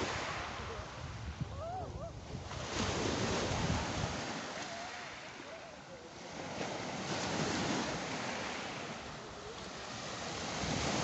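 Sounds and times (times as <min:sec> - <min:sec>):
wind rumble on microphone: 0:00.0 - 0:04.6
surf on pebble beach: 0:00.0 - 0:11.0.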